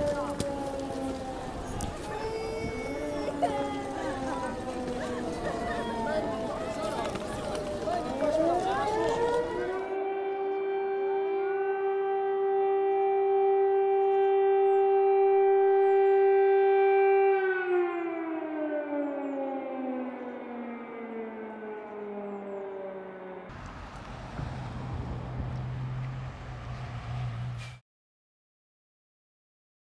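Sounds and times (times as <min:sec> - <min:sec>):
crowd noise: 0:00.0 - 0:09.9
street noise: 0:00.0 - 0:16.5, 0:18.8 - 0:27.8
air-raid siren wailing: 0:00.0 - 0:27.4
low engine hum: 0:23.5 - 0:27.8.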